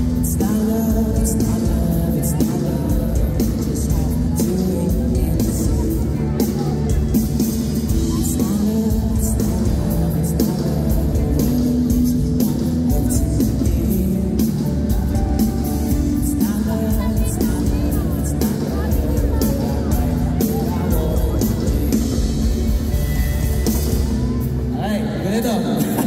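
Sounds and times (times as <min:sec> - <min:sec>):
drums: 0:00.0 - 0:26.0
man singing lead vocal: 0:00.0 - 0:26.0.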